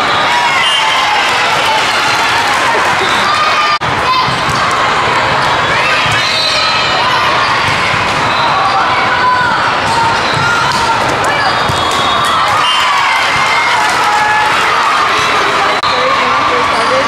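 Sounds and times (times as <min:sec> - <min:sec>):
crowd chatter and shouts: 0:00.0 - 0:17.0.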